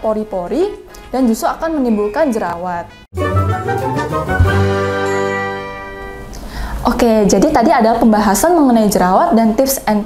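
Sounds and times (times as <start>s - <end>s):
low musical hit: 3.2s - 6.3s
bright ringing chime: 4.6s - 6.4s.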